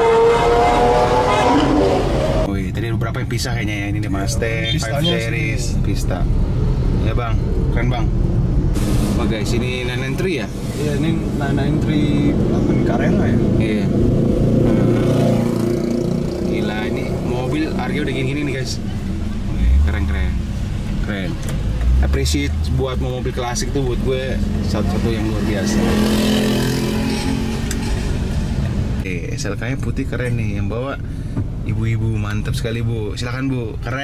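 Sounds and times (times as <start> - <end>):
car engine and road rumble: 0.0 - 34.0
people talking: 2.5 - 6.3, 7.0 - 8.1, 9.2 - 13.9, 16.5 - 21.4, 22.0 - 26.1, 29.0 - 31.0, 31.7 - 34.0.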